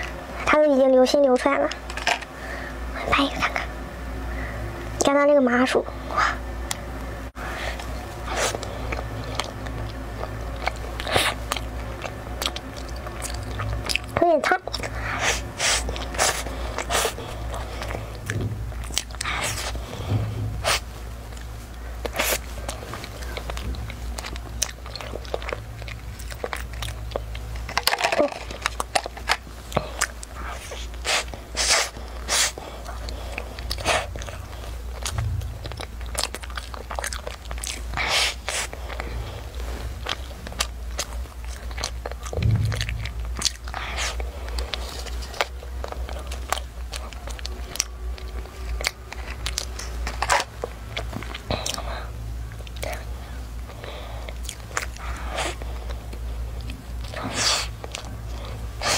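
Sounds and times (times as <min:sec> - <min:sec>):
chewing: 0:07.6 - 0:20.0, 0:20.6 - 0:58.9.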